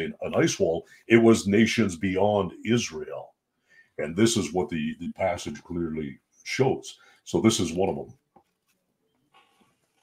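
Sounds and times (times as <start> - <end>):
man talking: 0.0 - 3.4, 4.0 - 8.2.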